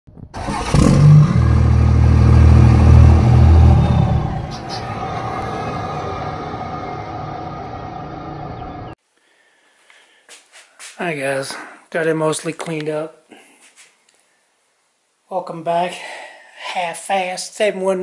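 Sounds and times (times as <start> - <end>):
loud low rumble: 0.8 - 9.0
hissy tail: 1.3 - 9.0.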